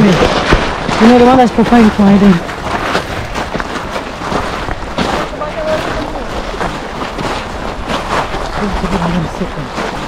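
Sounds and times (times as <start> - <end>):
wind buffeting microphone: 0.0 - 10.0
faint voices: 5.2 - 6.6.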